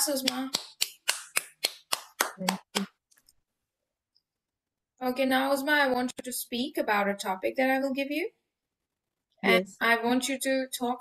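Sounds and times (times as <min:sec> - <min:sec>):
hand claps: 0:00.0 - 0:03.0.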